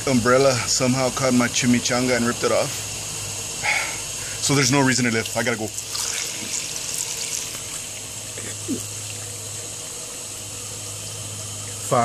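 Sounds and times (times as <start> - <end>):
hose nozzle spraying water: 5.2 - 10.1.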